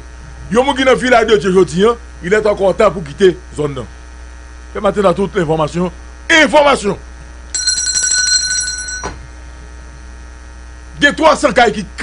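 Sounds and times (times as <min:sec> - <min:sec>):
mains hum: 0:00.0 - 0:12.0
telephone ringing: 0:07.6 - 0:09.2.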